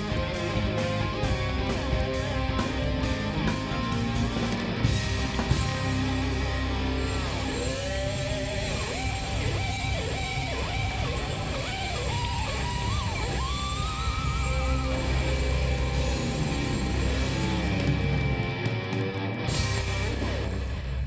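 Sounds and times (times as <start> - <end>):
bass-heavy band backing: 0.0 - 21.0
electric guitar lead with bent notes: 0.0 - 21.0.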